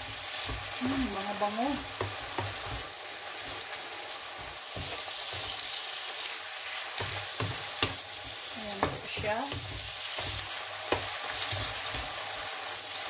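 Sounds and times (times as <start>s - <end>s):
spatula scraping and knocking pan: 0.0s - 3.7s, 4.4s - 5.8s, 6.6s - 12.6s
mushrooms sizzling in frying pan: 0.0s - 13.0s.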